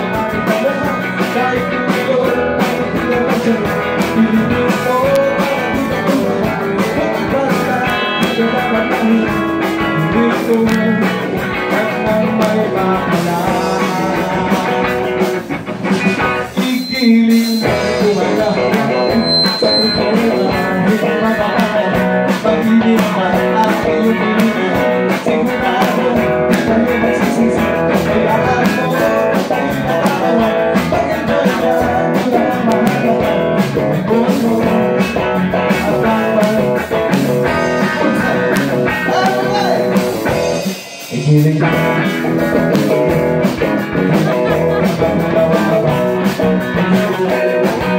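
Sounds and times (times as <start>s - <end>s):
live blues-rock band: 0.0s - 47.9s.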